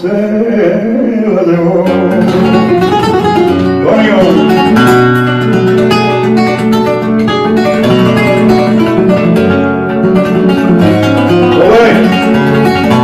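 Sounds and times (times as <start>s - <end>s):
person singing: 0.0s - 5.4s, 11.4s - 13.0s
flamenco guitar playing: 0.8s - 13.0s.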